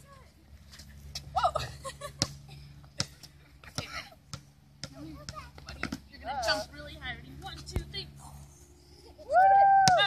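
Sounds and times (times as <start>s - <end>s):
basketball bouncing on asphalt: 2.1s - 8.2s, 9.8s - 10.0s.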